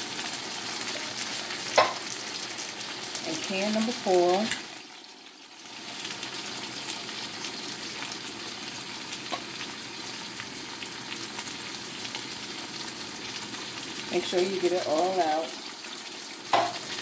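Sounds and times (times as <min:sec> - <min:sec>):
food sizzling in a pan: 0:00.0 - 0:17.0.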